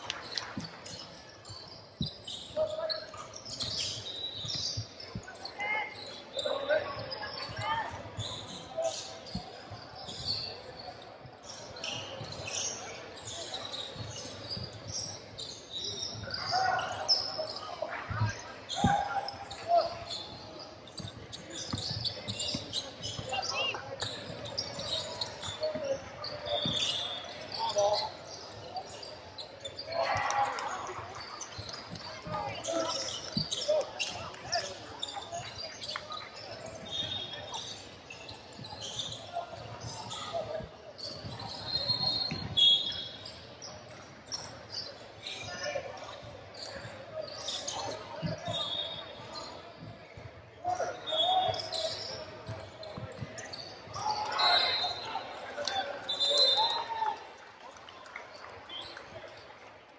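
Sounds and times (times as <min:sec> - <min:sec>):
sneakers squeaking: 0:00.0 - 0:57.0.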